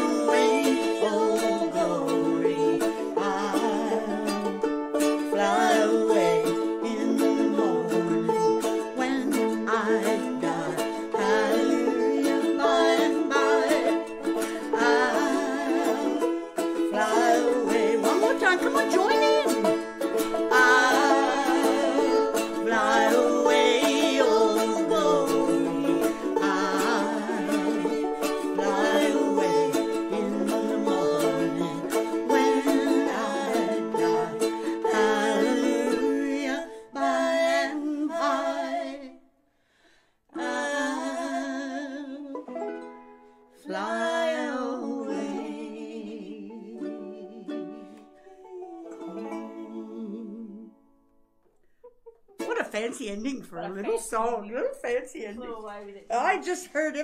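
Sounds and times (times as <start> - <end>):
picked banjo: 0.0 - 39.2, 40.3 - 57.0
strummed string instrument: 0.0 - 39.2, 40.3 - 57.0
women singing together: 0.0 - 39.2, 40.3 - 42.5, 43.6 - 50.8.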